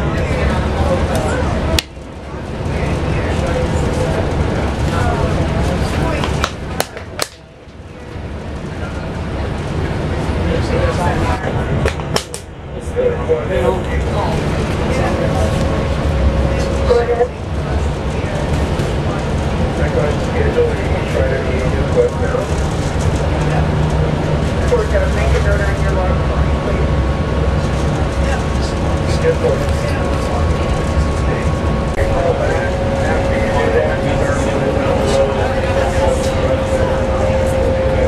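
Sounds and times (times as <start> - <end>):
bus engine and road rumble: 0.0 - 38.0
passengers talking indistinctly: 0.0 - 38.0.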